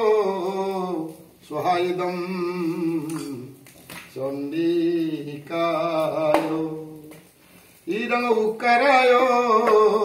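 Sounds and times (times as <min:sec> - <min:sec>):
man chanting: 0:00.0 - 0:07.3, 0:07.9 - 0:10.0.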